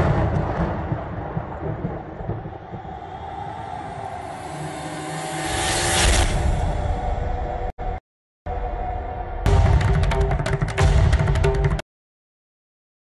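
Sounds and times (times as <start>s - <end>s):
dramatic soundtrack: 0.0s - 7.7s, 8.5s - 11.8s
loud rushing swell: 2.6s - 7.7s.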